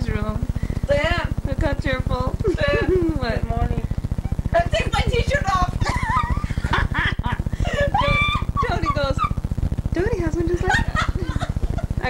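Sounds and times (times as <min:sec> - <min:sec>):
steady low buzz: 0:00.0 - 0:12.0.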